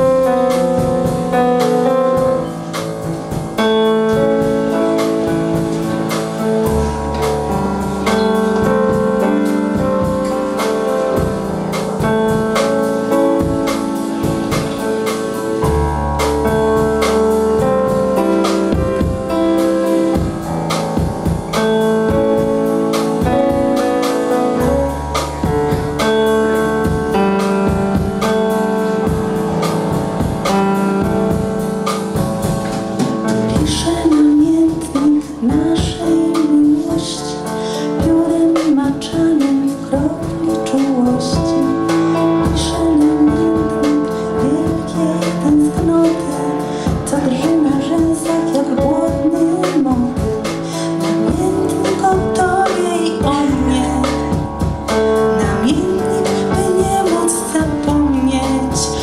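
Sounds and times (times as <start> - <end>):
drum kit beat: 0.0 - 59.0.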